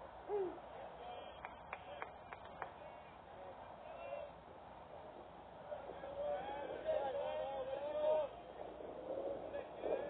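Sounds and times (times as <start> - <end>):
person hooting: 0.3 - 0.6.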